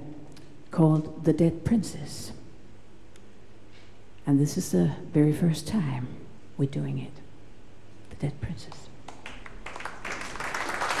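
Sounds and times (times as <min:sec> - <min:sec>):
audience applause: 0:09.2 - 0:11.0.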